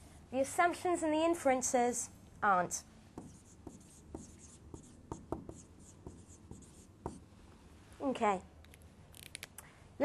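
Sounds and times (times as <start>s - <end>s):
marker writing on whiteboard: 3.1s - 7.3s.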